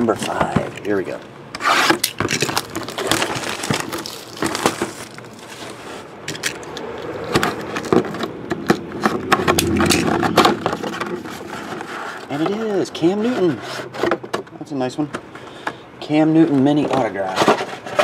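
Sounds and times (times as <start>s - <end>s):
cardboard lid scraping: 1.6s - 6.1s, 7.3s - 14.3s
wrapper crinkling and tearing: 2.0s - 5.8s.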